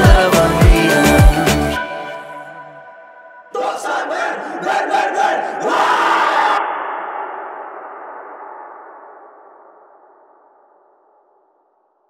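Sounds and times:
young men shouting a team cheer: 3.6s - 6.6s.

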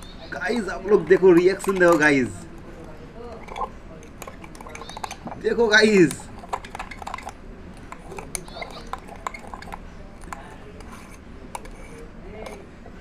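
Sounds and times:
metal utensil stirring in glass: 0.0s - 13.0s
metal clinking against glass: 0.8s - 12.6s.

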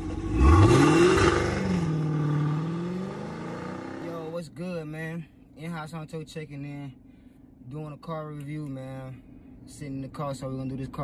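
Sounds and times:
car engine revving and idling: 0.0s - 4.6s.

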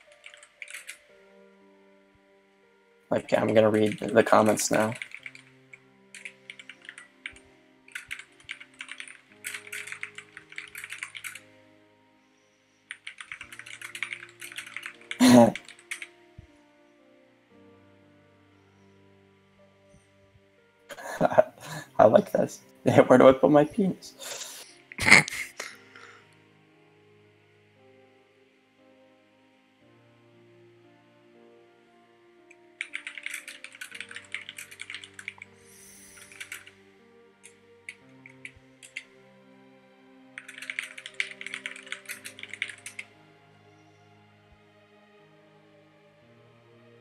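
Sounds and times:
typing on keyboard: 0.0s - 1.1s, 3.8s - 11.5s, 12.9s - 16.2s, 32.6s - 35.5s, 36.2s - 36.7s, 37.4s - 39.1s, 40.4s - 43.1s
faint background music: 0.0s - 47.0s.

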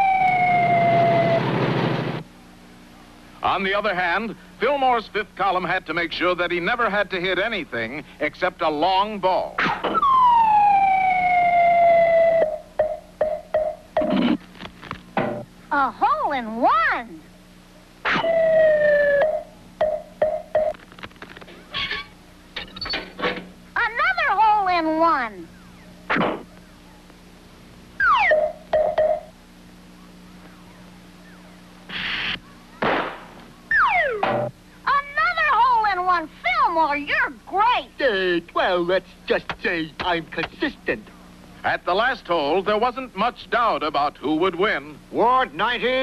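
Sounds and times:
falling whistle settling on note: 0.0s - 1.5s
cartoon falling whistle: 0.0s - 1.6s, 18.0s - 19.5s, 28.0s - 28.6s, 33.7s - 34.3s
wavering whistle sliding down: 0.0s - 1.6s
short hissing bursts: 31.9s - 32.4s.

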